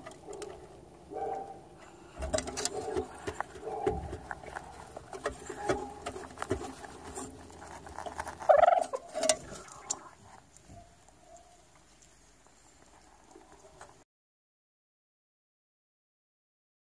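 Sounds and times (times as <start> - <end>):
chickens clucking: 0.0 - 7.3, 8.4 - 10.3.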